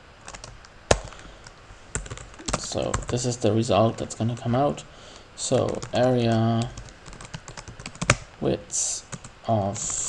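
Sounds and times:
computer keyboard keystrokes: 0:01.9 - 0:03.2, 0:05.1 - 0:08.3.

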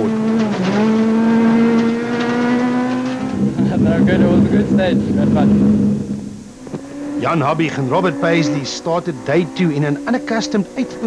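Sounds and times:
car engine at high revs: 0:00.0 - 0:11.0.

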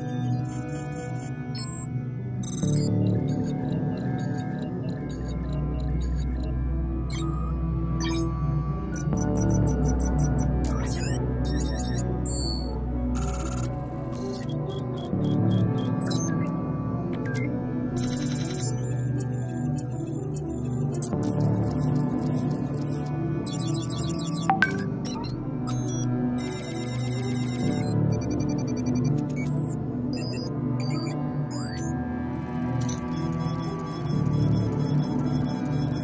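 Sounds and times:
ambient background music: 0:00.0 - 0:36.0
high sliding chirps: 0:24.5 - 0:24.9
short electronic beeps: 0:24.5 - 0:25.2.

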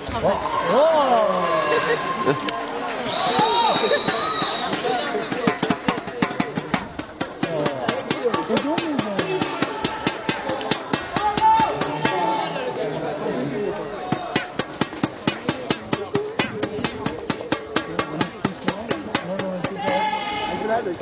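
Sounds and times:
people talking: 0:00.0 - 0:14.5, 0:15.2 - 0:21.0
sharp knocks in steady beat: 0:05.3 - 0:12.2, 0:14.1 - 0:20.1.

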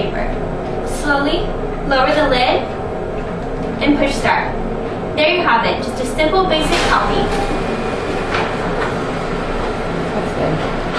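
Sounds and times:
photocopier whirring: 0:06.4 - 0:10.9.

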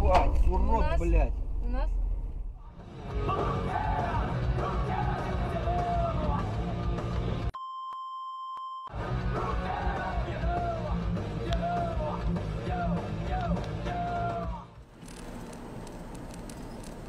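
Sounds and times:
censor bleep: 0:07.6 - 0:08.9.

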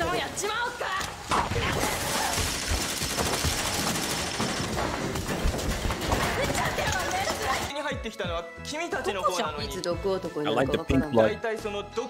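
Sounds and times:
rapid gunfire: 0:02.0 - 0:07.7.

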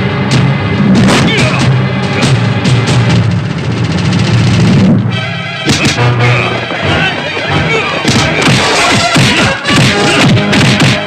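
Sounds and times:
steady low tones: 0:00.0 - 0:10.5
film background score: 0:00.0 - 0:11.0
fight scene sound effects: 0:00.3 - 0:05.1, 0:05.7 - 0:11.0.

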